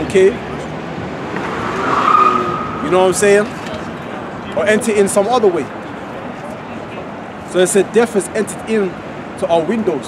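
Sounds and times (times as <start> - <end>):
vehicle passing: 0.0 - 5.1
steady high squeal: 1.5 - 3.1.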